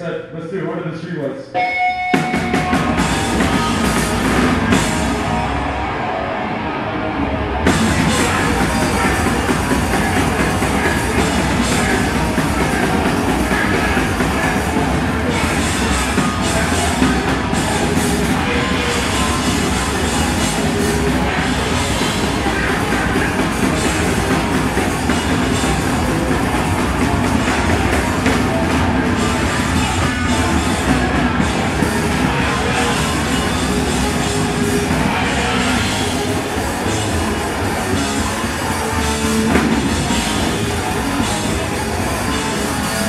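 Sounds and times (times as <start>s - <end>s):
electric guitar: 1.5s - 43.0s
drum kit: 1.6s - 6.2s, 7.6s - 43.0s.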